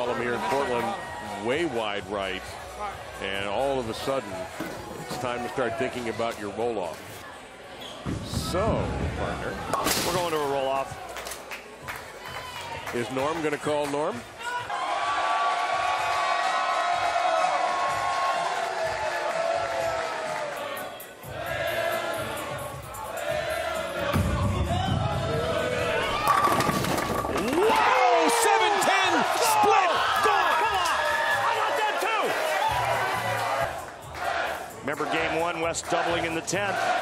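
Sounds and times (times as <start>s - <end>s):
crowd yelling and cheering: 0.0s - 3.4s, 10.7s - 13.5s, 14.2s - 37.0s
bowling pins crashing: 24.2s - 28.2s
bowling ball rolling down lane: 26.0s - 27.8s.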